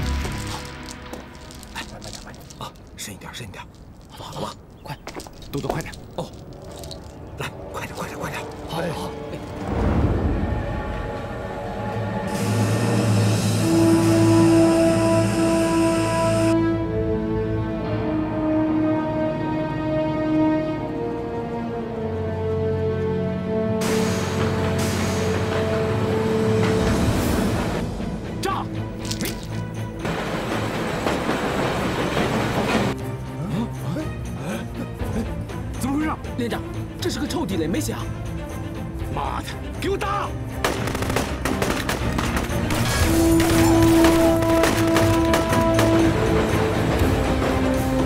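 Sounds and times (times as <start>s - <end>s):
tense background music: 0.0s - 48.0s
steam locomotive rumble: 9.9s - 16.6s, 23.8s - 28.1s, 30.1s - 33.0s
steam hissing: 12.2s - 16.5s, 23.8s - 25.8s.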